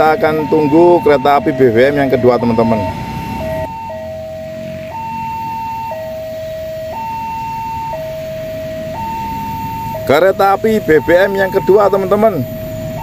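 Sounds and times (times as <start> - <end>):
two-tone warning alarm: 0.0 - 13.0.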